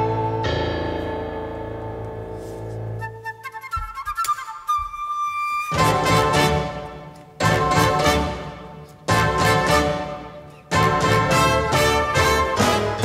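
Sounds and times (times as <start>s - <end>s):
high woodwind notes: 0.0s - 1.1s, 2.8s - 13.0s
wind ensemble and rock band: 5.7s - 13.0s.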